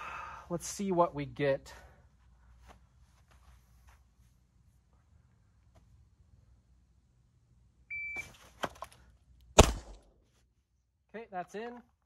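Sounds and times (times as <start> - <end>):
clothing rustle: 2.1 - 6.0
shot timer beep: 7.9 - 8.3
gunshot: 9.6 - 10.1.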